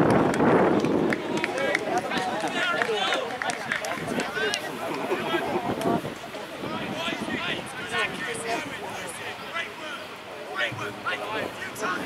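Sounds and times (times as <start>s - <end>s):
distant voices shouting: 1.0s - 12.0s.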